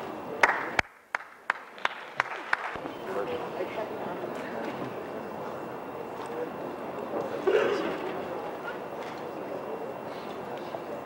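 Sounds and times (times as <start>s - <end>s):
person clapping hands: 0.4s - 2.8s.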